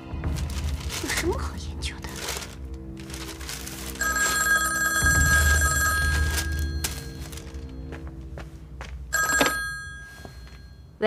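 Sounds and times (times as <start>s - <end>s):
old desk telephone ringing: 4.0s - 7.6s, 9.1s - 10.9s.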